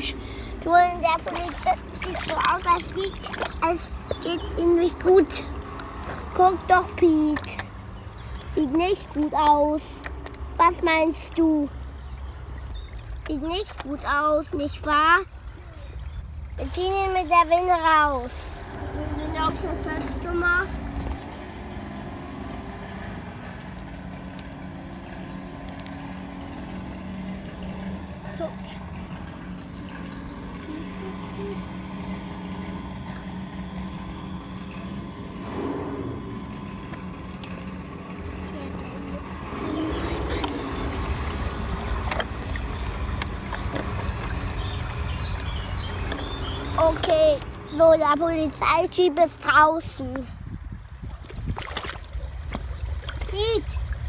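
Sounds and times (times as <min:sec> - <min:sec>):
small electric winch motor running: 0:00.0 - 0:11.4, 0:16.6 - 0:50.0.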